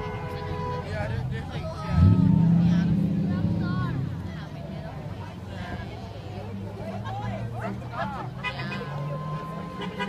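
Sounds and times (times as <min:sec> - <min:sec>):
faint voices: 0:00.0 - 0:10.0
large road vehicle drone: 0:00.0 - 0:10.0.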